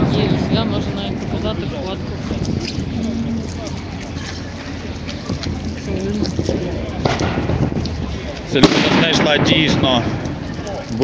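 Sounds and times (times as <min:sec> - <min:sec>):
crowd voices: 0:00.0 - 0:11.0
wind: 0:00.0 - 0:11.0
sharp explosive bang: 0:07.0 - 0:07.8, 0:08.6 - 0:10.2.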